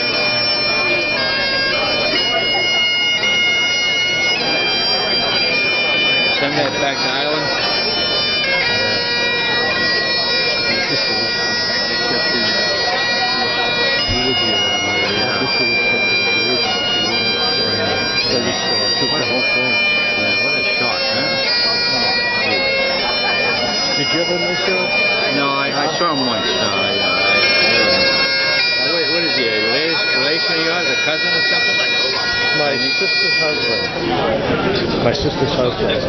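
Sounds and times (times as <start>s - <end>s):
bagpipes playing a tune: 0.0s - 36.0s.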